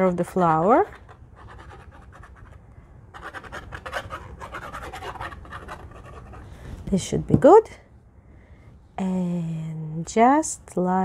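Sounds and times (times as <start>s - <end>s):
glue nozzle scratching on paper: 3.2s - 6.5s.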